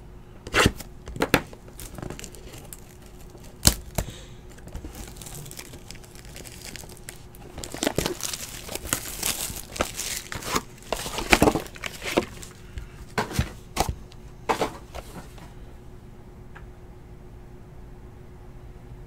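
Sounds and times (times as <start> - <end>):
plastic wrapping crinkling: 0.6 - 15.4.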